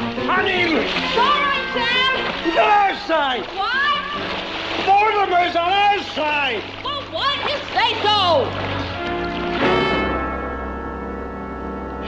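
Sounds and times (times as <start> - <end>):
water splashing: 0.0 - 10.6.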